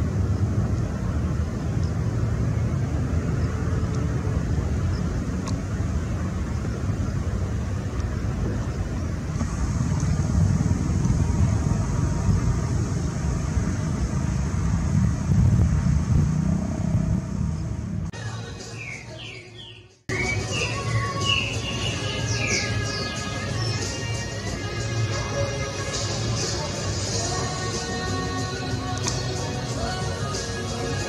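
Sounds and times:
wind buffeting microphone: 0.0 - 18.1
music: 18.1 - 31.0.

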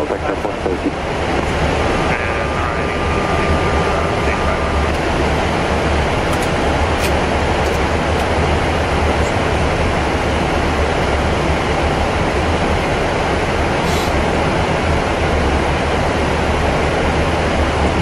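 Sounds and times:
deep rumble: 0.0 - 18.0
thin steady tone: 1.6 - 6.7.

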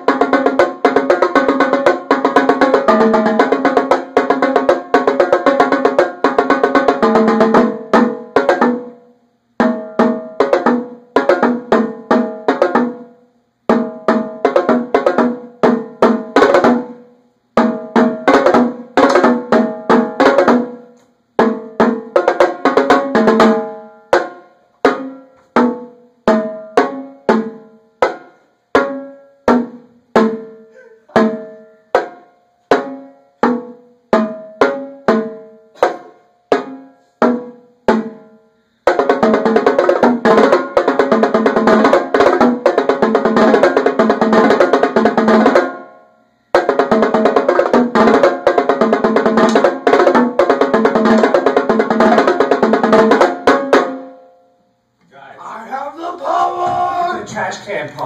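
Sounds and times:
marching tenor drums: 55.2 - 58.0.

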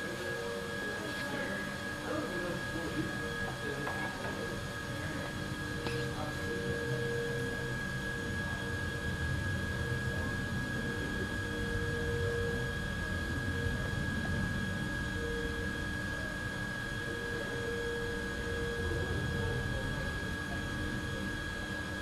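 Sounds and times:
low mechanical rumble: 0.0 - 22.0
machine high-pitched whine: 0.0 - 22.0.

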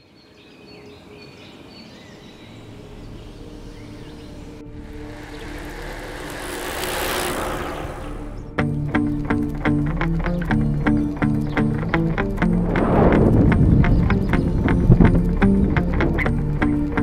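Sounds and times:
vehicle passing close by: 2.7 - 8.6, 12.3 - 15.1.

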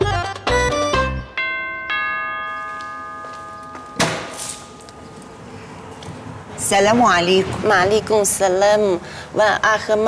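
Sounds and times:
two-tone doorbell chime: 1.2 - 5.6.

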